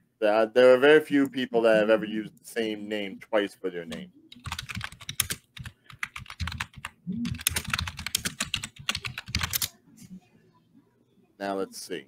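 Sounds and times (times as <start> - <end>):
typing on computer keyboard: 3.9 - 9.7.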